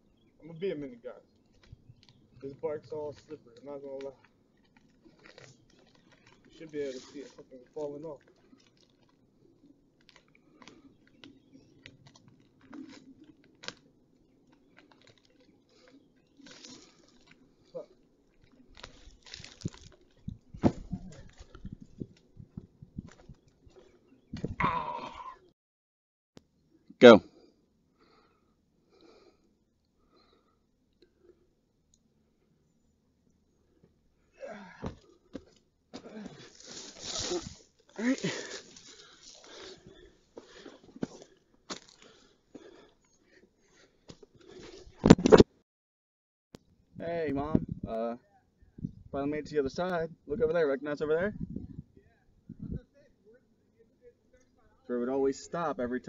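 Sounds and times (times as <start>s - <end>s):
twigs and dry leaves crunching: 1.2s - 25.2s, 34.5s - 45.4s
twig snapping: 3.6s - 6.5s, 10.0s - 13.9s, 14.5s - 17.4s, 18.4s - 21.6s.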